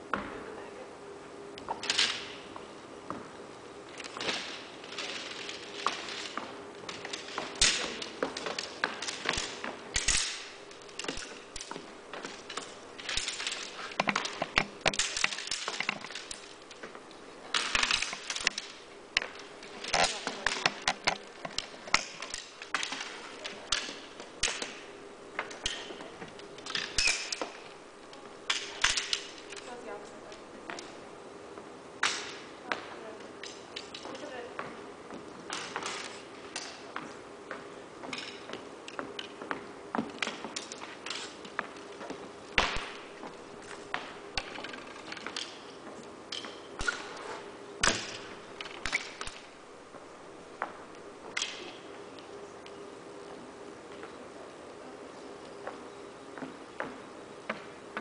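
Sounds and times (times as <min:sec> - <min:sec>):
steady low hum: 0:00.0 - 0:58.0
frame poles clicking: 0:01.6 - 0:02.7, 0:03.9 - 0:31.0, 0:32.0 - 0:49.8, 0:50.4 - 0:52.8.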